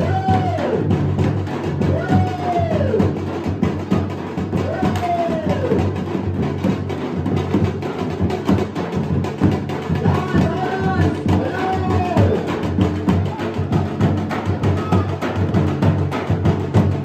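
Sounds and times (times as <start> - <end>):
dhol drums dance beat: 0.0 - 17.0.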